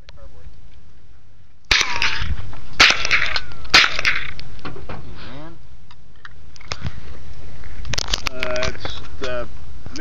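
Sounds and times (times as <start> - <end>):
rifle shots echoing: 2.8 - 4.4.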